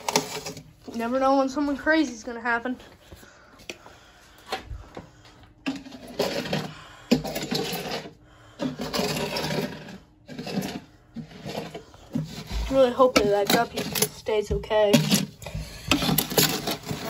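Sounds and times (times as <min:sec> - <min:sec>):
objects rustling and clattering: 0:00.0 - 0:17.0.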